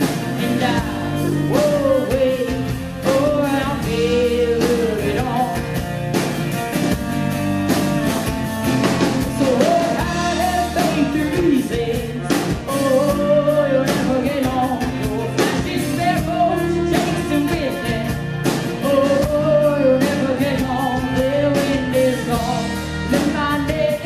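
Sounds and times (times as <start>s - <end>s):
acoustic guitar: 0.0s - 24.0s
drum kit: 0.0s - 24.0s
electric bass: 0.0s - 24.0s.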